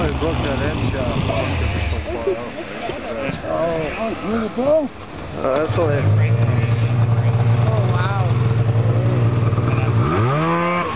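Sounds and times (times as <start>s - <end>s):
snowmobile engine idling: 0.0s - 2.4s, 5.3s - 10.9s
faint voices: 0.0s - 10.9s.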